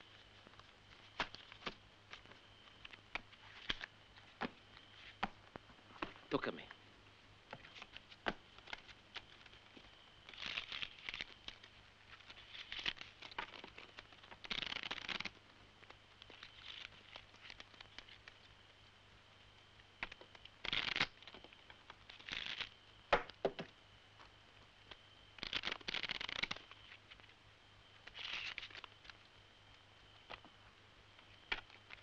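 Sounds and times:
playing cards shuffling: 0.4 - 6.2, 7.5 - 15.4, 16.3 - 18.4, 20.0 - 23.6, 25.4 - 26.7.

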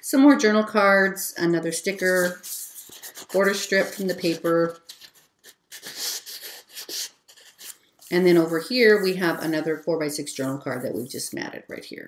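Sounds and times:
paper card sliding rustle: 1.9 - 9.8.

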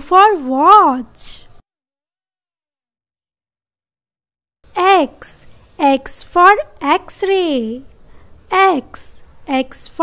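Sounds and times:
person speaking: 0.0 - 1.6, 4.7 - 7.9, 8.5 - 10.0.

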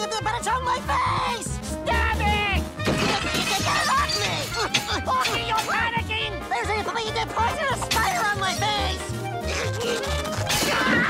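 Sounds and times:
cartoon background music: 0.0 - 11.0
plates shattering: 2.8 - 5.4
cartoon voice crying out: 9.6 - 11.0.

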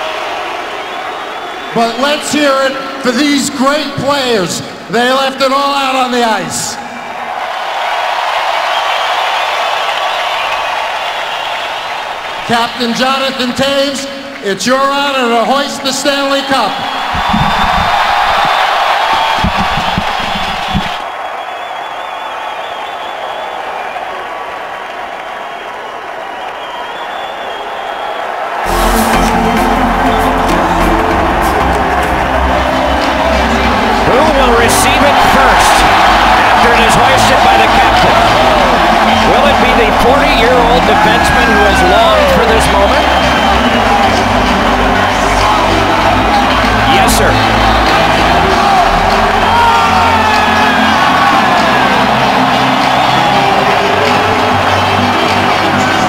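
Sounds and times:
crowd whooping and shouting: 0.0 - 4.4, 5.5 - 56.0
crowd cheering: 0.0 - 56.0
loud music with steady beat: 28.7 - 36.6, 37.9 - 56.0.

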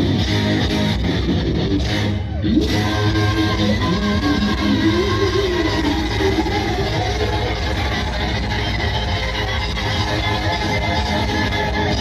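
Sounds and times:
loud distorted metal band: 0.0 - 12.0
singer's voice: 0.0 - 12.0.

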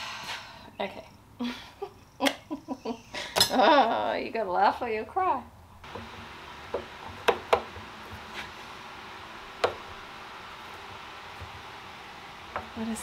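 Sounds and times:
faint steady hiss: 5.6 - 13.0.

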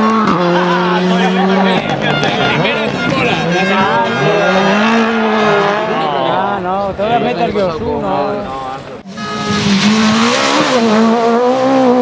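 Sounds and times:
rally car engine revving: 0.0 - 7.0, 8.3 - 12.0
car sliding on gravel: 9.1 - 12.0.

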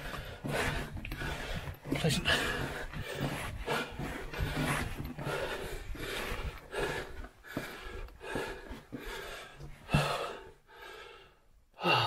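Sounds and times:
man breathing hard: 0.0 - 12.0.

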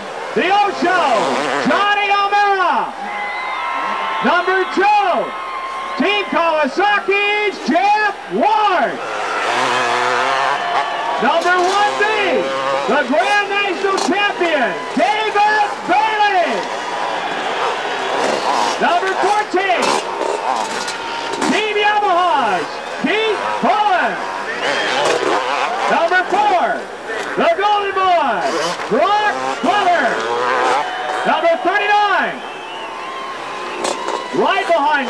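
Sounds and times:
echoing announcer voice: 0.0 - 35.0.

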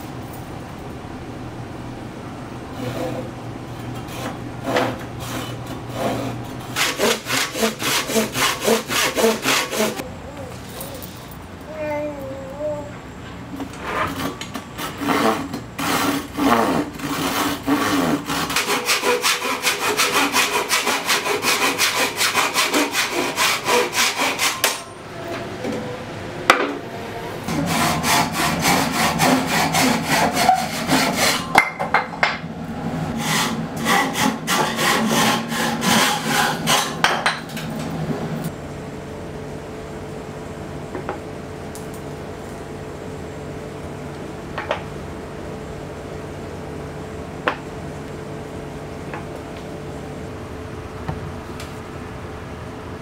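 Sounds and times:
hand saw cutting wood: 4.0 - 10.0, 13.9 - 24.9, 27.5 - 31.6, 33.1 - 37.1.

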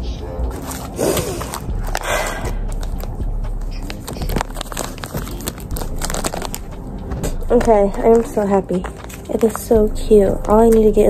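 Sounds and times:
cardboard packaging rustling: 0.5 - 6.8, 7.4 - 9.8
small box clicks and taps: 8.8 - 9.7.

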